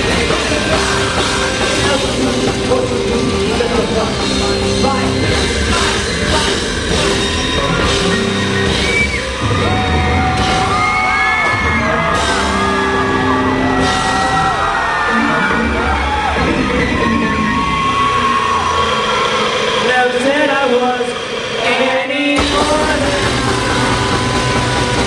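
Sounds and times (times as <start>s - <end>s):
live rock band playing: 0.0s - 20.2s, 22.4s - 25.0s
yelled whooping vocals: 0.0s - 20.2s, 22.4s - 25.0s.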